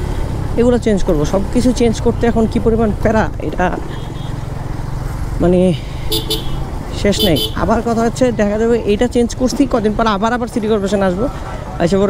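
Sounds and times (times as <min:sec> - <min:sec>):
motorcycle engine rumbling: 0:00.0 - 0:12.0
street traffic: 0:00.0 - 0:12.0.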